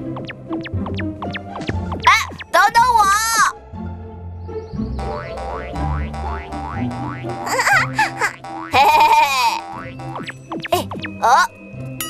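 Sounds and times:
playful cartoon music: 0.0s - 12.0s
high-pitched cartoon sound: 2.0s - 3.5s.

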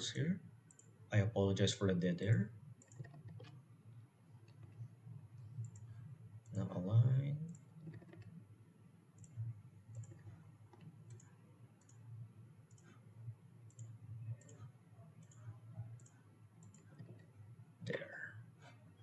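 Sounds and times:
low steady hum: 0.0s - 19.0s
computer mouse clicks: 0.7s - 0.9s, 2.8s - 3.6s, 4.4s - 4.9s, 5.6s - 6.7s, 7.4s - 8.4s, 9.2s - 12.0s, 12.7s - 13.0s, 13.7s - 17.4s.

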